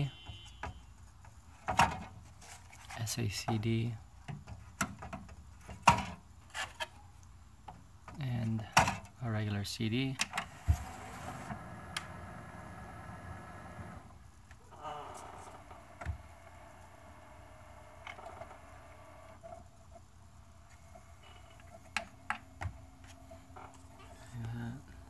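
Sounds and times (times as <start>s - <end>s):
disc mechanism whirring: 10.3s - 14.2s, 15.6s - 24.3s
motorized door sliding shut: 10.4s - 14.2s.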